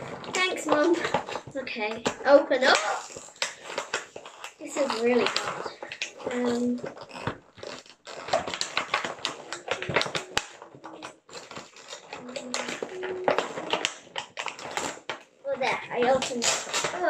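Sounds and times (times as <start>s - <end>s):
plastic packaging crinkling: 0.0s - 17.0s.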